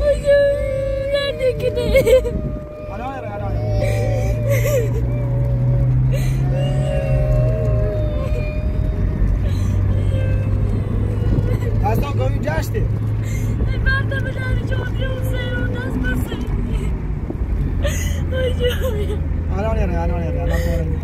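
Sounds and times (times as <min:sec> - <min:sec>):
car engine and road noise drone: 0:00.0 - 0:21.0.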